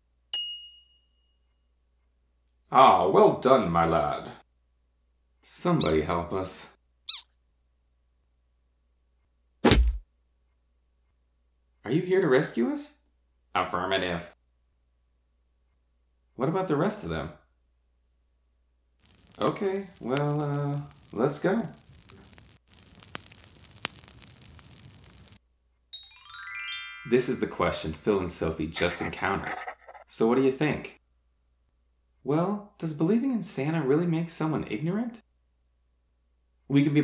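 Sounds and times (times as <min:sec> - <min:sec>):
cartoon squeak falling in pitch: 0:07.1 - 0:07.3
campfire crackling and hissing: 0:19.0 - 0:25.4.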